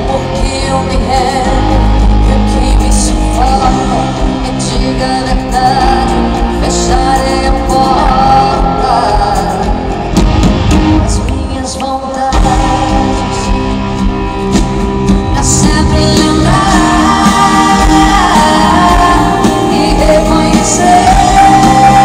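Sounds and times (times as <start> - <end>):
live band music in arena: 0.0 - 22.0.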